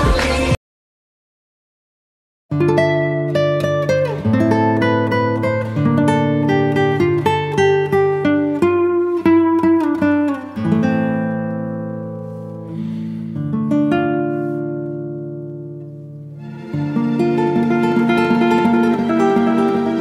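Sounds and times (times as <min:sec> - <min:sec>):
fingerpicked acoustic guitar: 0:02.5 - 0:20.0.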